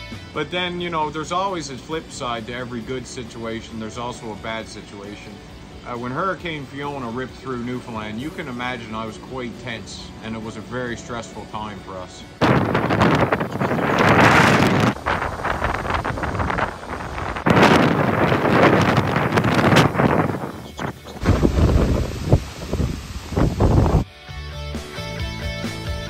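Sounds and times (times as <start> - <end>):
storm wind buffeting microphone: 12.4 - 24.0.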